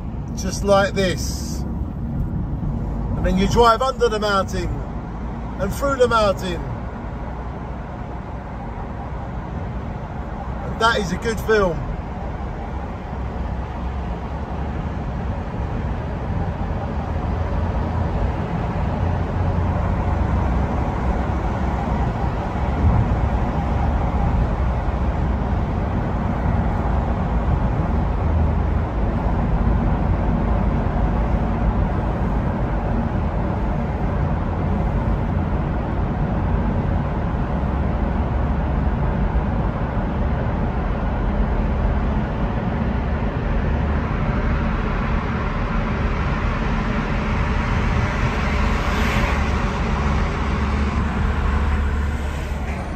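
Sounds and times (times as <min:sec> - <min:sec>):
car road and engine rumble: 0:00.0 - 0:52.9.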